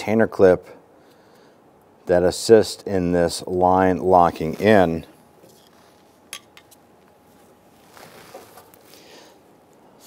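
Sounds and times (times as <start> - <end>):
gloved hand rustling: 4.1 - 10.0.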